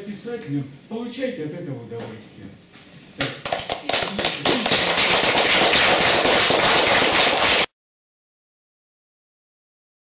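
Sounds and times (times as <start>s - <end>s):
audience applauding: 3.4s - 7.7s.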